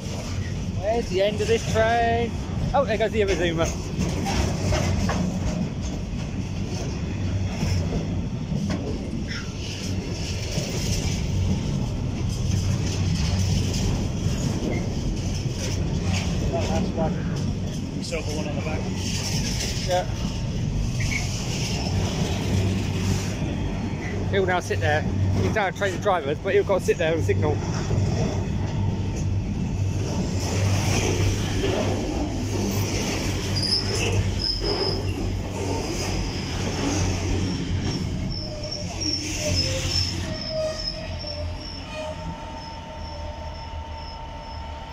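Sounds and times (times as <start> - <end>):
train wheels rumbling on rails: 0.0 - 44.9
high-pitched wheel squeals: 20.9 - 22.0, 33.3 - 35.4, 36.2 - 44.9.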